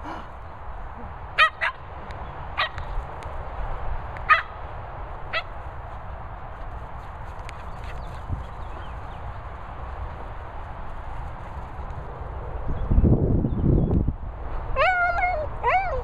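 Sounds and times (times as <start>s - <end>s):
dog barking high-pitched: 1.4s - 1.8s, 2.6s - 2.8s, 4.3s - 4.5s.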